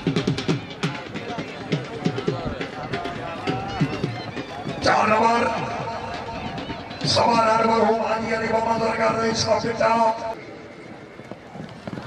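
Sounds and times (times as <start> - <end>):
man commentating: 4.7 - 6.2, 6.9 - 10.4.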